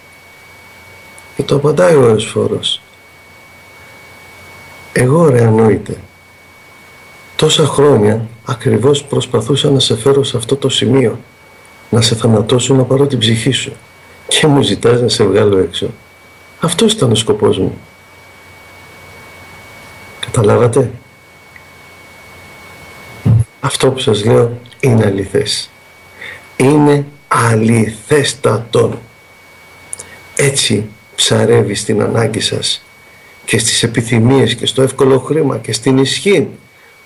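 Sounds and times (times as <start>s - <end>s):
faint high steady tone: 0.0s - 37.0s
faint high-pitched whine: 0.0s - 37.0s
radio background hiss: 0.0s - 37.0s.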